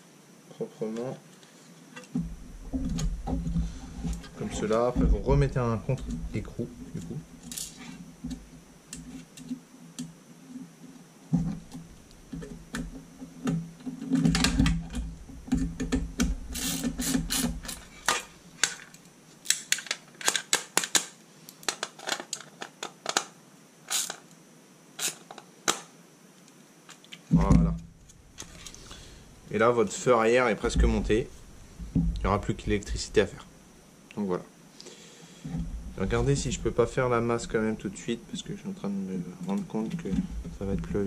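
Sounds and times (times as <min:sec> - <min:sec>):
rubbing and handling noise: 0:00.8 - 0:09.6, 0:10.5 - 0:23.3, 0:26.9 - 0:33.5
small metal parts clicking: 0:07.4 - 0:07.8, 0:23.9 - 0:24.3.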